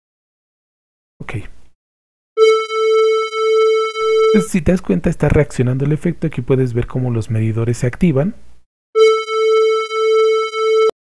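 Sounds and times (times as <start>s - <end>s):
buzzy synthesizer note: 3.9s - 4.6s.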